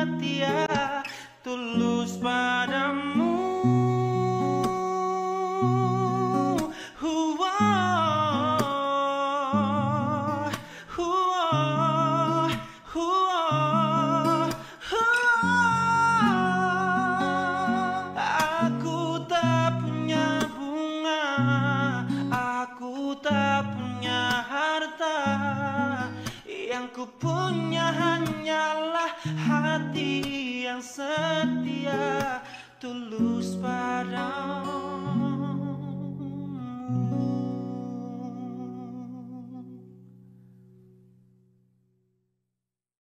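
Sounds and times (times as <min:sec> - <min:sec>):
acoustic guitar chords: 0:00.0 - 0:42.2.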